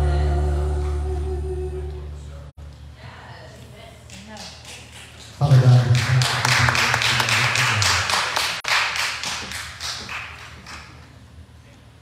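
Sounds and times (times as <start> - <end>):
sharp claps or taps: 6.2 - 11.0.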